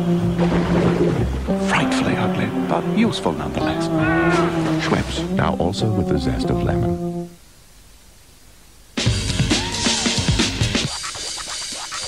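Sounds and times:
vhs tape hiss: 0:00.0 - 0:12.0
held music chord: 0:01.3 - 0:07.4
loud electronic music: 0:09.0 - 0:12.0.

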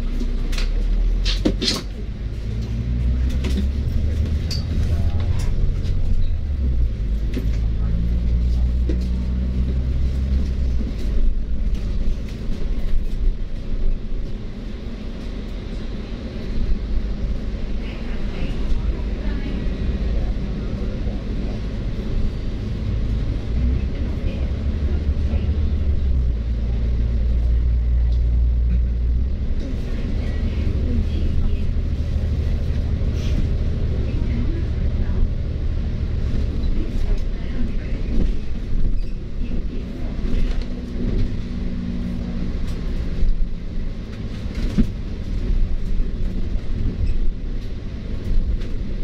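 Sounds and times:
bus engine and road rumble: 0:00.0 - 0:49.0.

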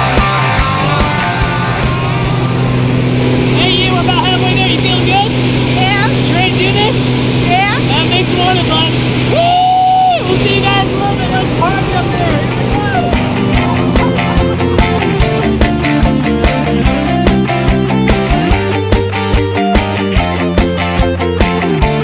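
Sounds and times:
plane engine drone in cabin: 0:00.0 - 0:18.9
voices talking: 0:03.5 - 0:09.2, 0:10.1 - 0:15.9.

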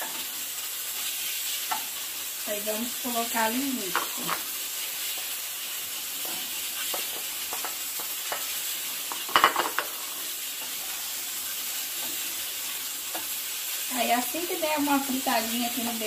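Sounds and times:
meat sizzling in a frying pan: 0:00.0 - 0:16.0
spoon knocking pan: 0:01.6 - 0:01.9, 0:03.8 - 0:04.5, 0:06.2 - 0:10.8, 0:13.0 - 0:13.4.

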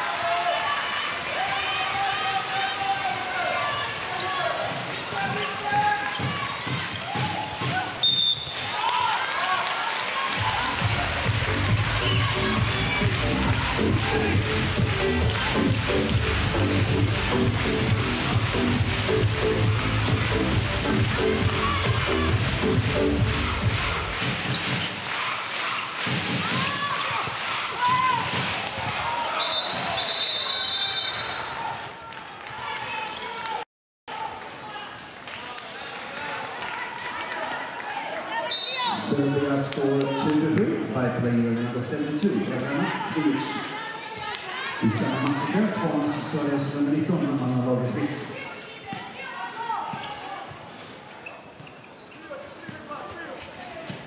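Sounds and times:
referee whistle: 0:08.0 - 0:08.8, 0:29.3 - 0:31.5, 0:38.5 - 0:39.0
music with heavy beat: 0:10.6 - 0:24.8
ball bouncing on court: 0:48.8 - 0:49.2.

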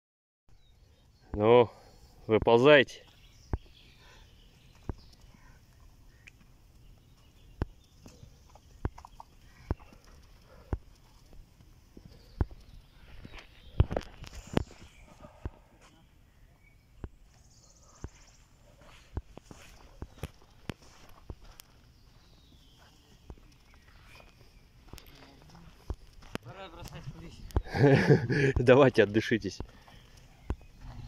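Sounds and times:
footsteps on sandy slope: 0:17.0 - 0:31.0.

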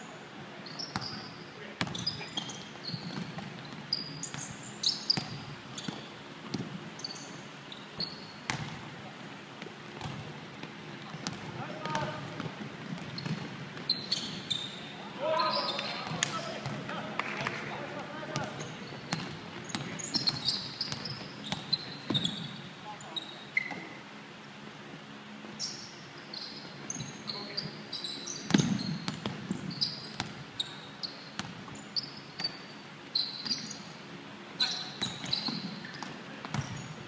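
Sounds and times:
sneakers squeaking: 0:00.6 - 0:08.9, 0:10.0 - 0:24.1, 0:25.4 - 0:34.0, 0:34.6 - 0:37.0
players' voices echoing: 0:10.8 - 0:12.8, 0:14.8 - 0:20.4.

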